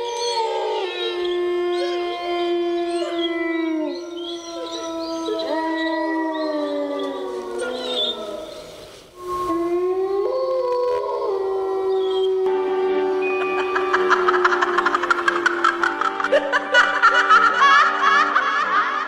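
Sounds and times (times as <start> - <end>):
overlapping long howls: 0.0 - 19.0.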